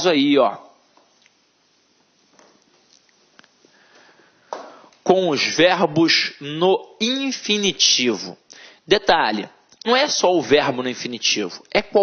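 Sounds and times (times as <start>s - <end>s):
man speaking: 0.0s - 0.8s, 5.0s - 12.0s
man inhaling sharply: 3.7s - 5.0s, 8.5s - 8.9s.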